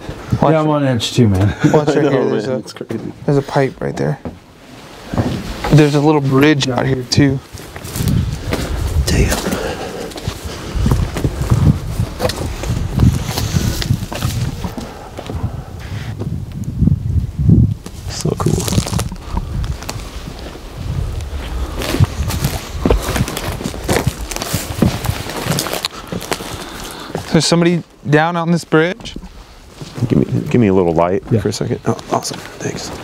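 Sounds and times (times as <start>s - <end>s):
footsteps through dry grass: 7.4s - 15.4s, 17.9s - 27.4s.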